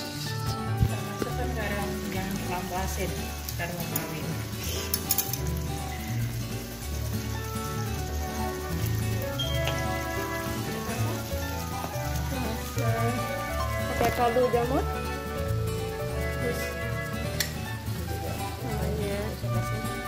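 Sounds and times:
background music: 0.0s - 20.0s
chicken sizzling in a wok: 0.0s - 20.0s.

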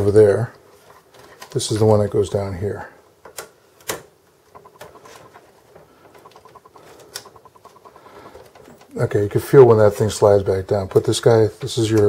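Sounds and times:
sharp plastic clicks: 3.2s - 9.0s
faint rapid ticking: 4.5s - 11.3s.

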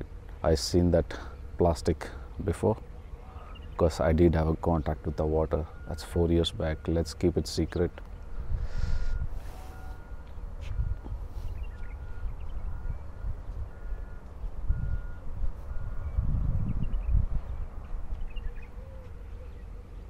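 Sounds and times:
low uneven rumble: 0.0s - 20.0s
faint short beeps: 5.0s - 7.2s, 8.8s - 16.3s.

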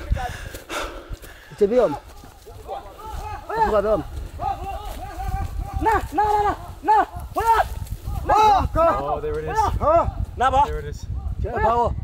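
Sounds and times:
footsteps running through dry bush: 0.0s - 10.4s.

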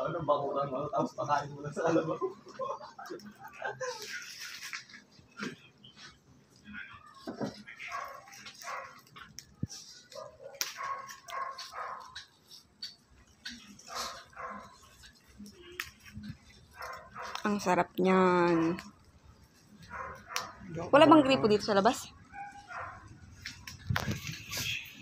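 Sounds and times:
dog barking: 7.9s - 9.1s, 10.1s - 12.2s, 13.8s - 14.9s, 16.8s - 17.4s, 19.9s - 20.6s, 22.3s - 23.1s.

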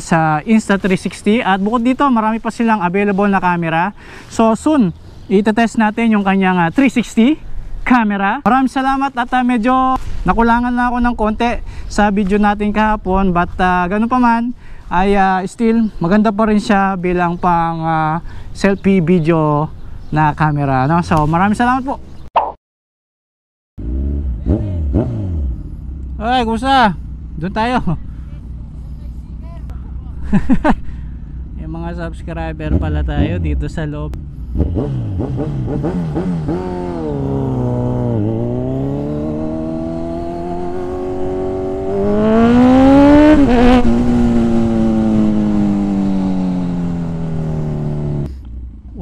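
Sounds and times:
motorcycle engine running: 23.8s - 49.0s.

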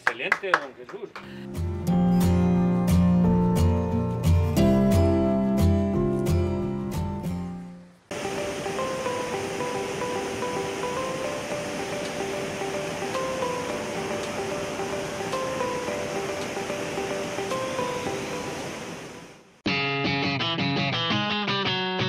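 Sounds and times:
gentle melody of held notes: 8.1s - 19.4s
waterfall rushing: 8.1s - 19.6s.

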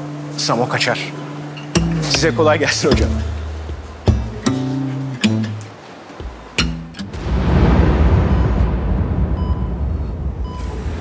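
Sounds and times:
loud rumbling whoosh: 7.1s - 11.0s.

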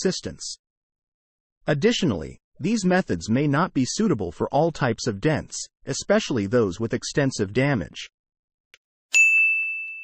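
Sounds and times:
bell-like ding: 9.1s - 10.0s.

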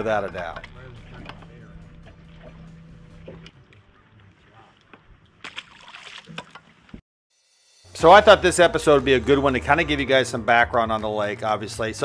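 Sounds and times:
faint voices: 3.4s - 4.9s.

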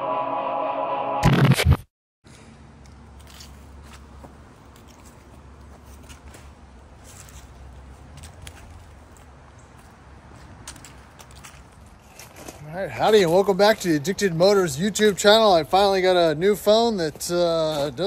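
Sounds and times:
quiet outdoor ambience: 2.2s - 18.0s.

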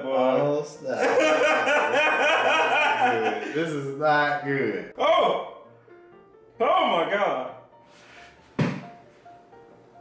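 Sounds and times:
faint background music: 0.0s - 10.0s
sharp thunk: 8.6s - 9.0s.

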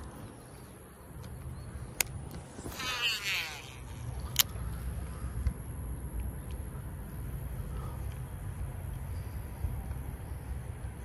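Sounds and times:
reel spool whirring: 2.4s - 4.5s.

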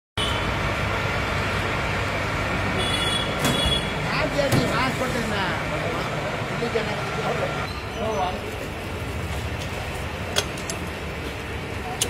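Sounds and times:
vehicle engine rumble and hiss: 0.2s - 12.0s.

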